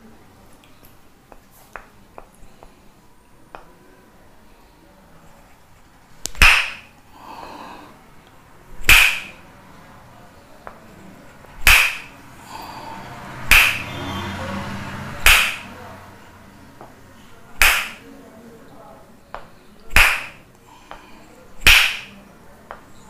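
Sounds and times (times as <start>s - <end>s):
wooden mallet striking wooden stick: 6.3s - 7.0s, 8.8s - 9.4s, 11.6s - 12.2s, 13.4s - 14.0s, 15.2s - 15.8s, 17.6s - 18.0s, 19.4s - 21.0s, 21.6s - 22.9s.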